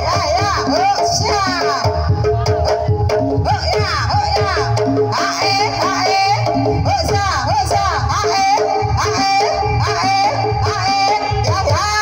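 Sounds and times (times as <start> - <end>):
steady low drum beat: 0.0 - 12.0.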